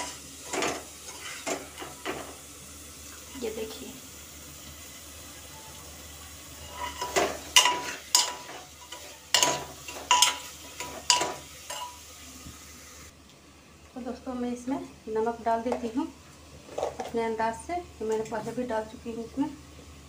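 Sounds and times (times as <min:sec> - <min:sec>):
spoon clanking and scraping pot: 0:00.0 - 0:02.3, 0:06.6 - 0:12.0
food sizzling: 0:00.0 - 0:13.2.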